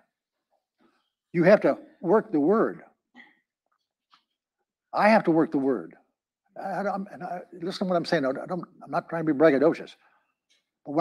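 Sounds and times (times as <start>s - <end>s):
man speaking: 1.4s - 2.8s, 5.0s - 6.0s, 6.6s - 10.0s.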